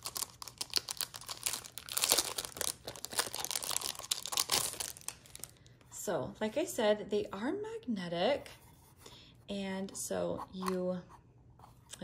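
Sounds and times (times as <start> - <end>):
plastic packaging crinkling: 0.0 - 5.7.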